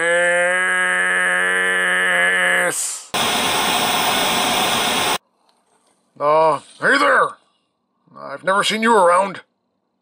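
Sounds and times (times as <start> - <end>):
tv static hiss: 3.2 - 5.2.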